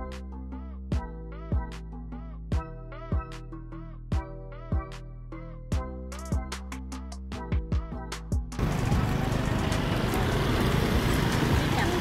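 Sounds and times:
passing traffic: 0:08.6 - 0:12.0.

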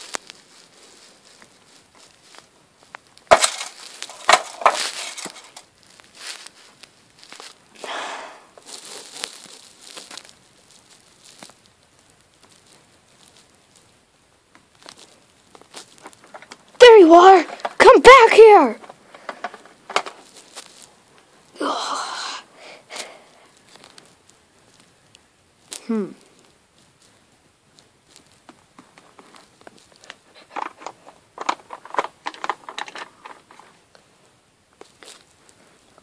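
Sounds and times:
plastic scraping and rustling: 0:00.0 - 0:07.7, 0:08.6 - 0:21.4, 0:23.5 - 0:25.0, 0:26.8 - 0:34.2
plastic toys knocking: 0:03.3 - 0:05.6, 0:17.3 - 0:20.2, 0:30.4 - 0:33.7.

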